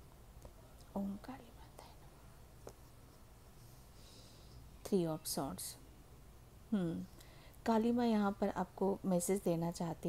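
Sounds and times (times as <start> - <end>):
soft whispering: 0.5 - 2.5
woman murmuring: 6.7 - 7.1.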